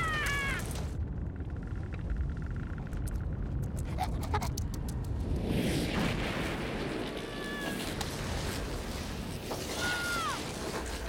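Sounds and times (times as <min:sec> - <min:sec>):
cartoon ice cracking and rumbling: 0:00.0 - 0:11.0.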